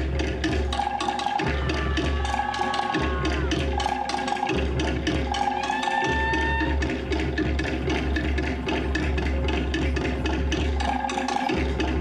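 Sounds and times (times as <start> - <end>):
wooden slit drums beaten rapidly: 0.0 - 12.0.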